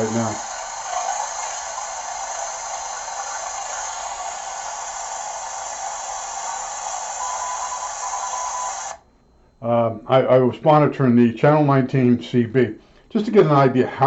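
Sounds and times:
radio static hiss: 0:00.0 - 0:09.0
faint steady tone: 0:00.0 - 0:13.2.

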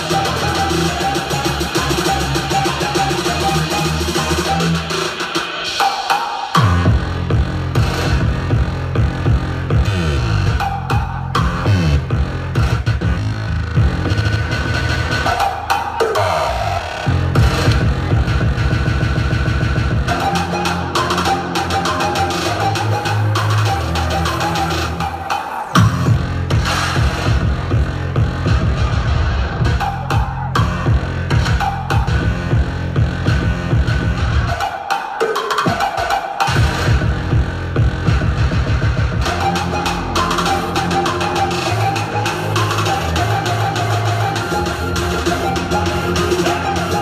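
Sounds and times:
pulsing electronic bass line: 0:00.0 - 0:05.9, 0:06.5 - 0:34.7, 0:35.7 - 0:47.0.

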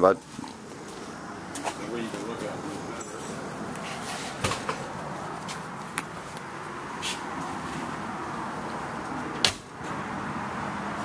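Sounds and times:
steady background hum: 0:00.0 - 0:09.9.

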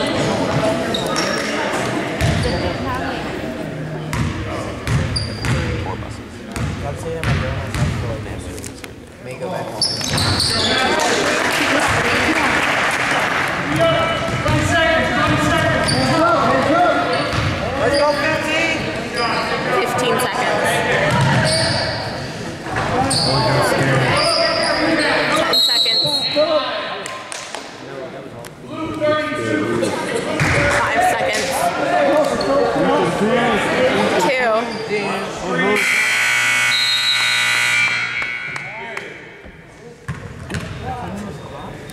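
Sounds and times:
sneakers squeaking: 0:00.0 - 0:03.0, 0:04.1 - 0:08.5, 0:09.6 - 0:11.1, 0:13.8 - 0:19.7, 0:21.0 - 0:26.6, 0:34.5 - 0:35.2, 0:36.8 - 0:41.9
spectators talking and calling out: 0:13.4 - 0:40.1
scoreboard buzzer horn: 0:35.8 - 0:38.7.

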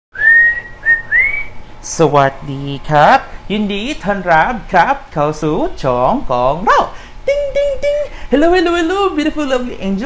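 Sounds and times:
person whistling: 0:00.1 - 0:01.6.

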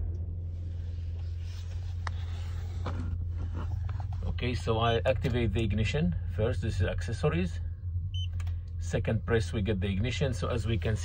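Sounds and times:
low hum in vehicle cabin: 0:00.0 - 0:11.0.

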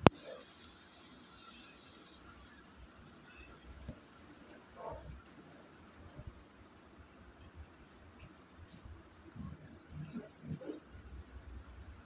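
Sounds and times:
high-pitched insect trilling: 0:00.1 - 0:05.2.

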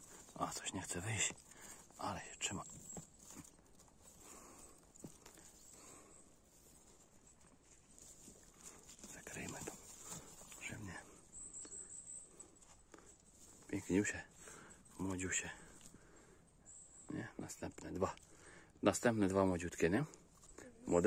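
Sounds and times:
faint rustling of moss: 0:00.0 - 0:21.0.

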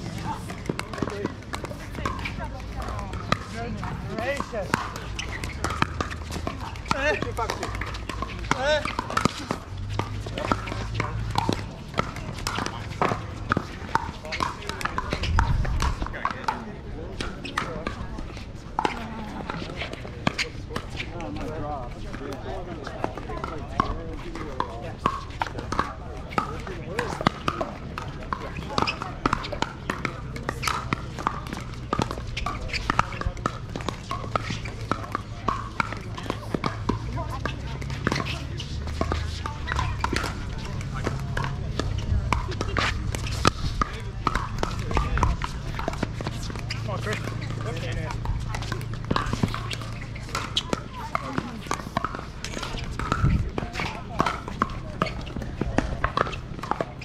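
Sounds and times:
murmur of voices: 0:00.0 - 0:57.0
paddles hitting plastic ball: 0:00.0 - 0:57.0.

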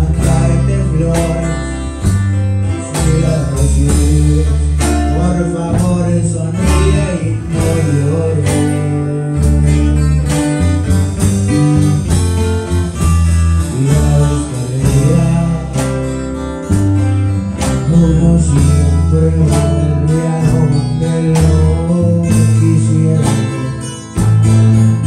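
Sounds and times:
man singing into a microphone: 0:00.0 - 0:02.0, 0:02.7 - 0:10.2, 0:13.5 - 0:16.3, 0:17.6 - 0:24.4
acoustic guitars strummed: 0:00.0 - 0:25.0.

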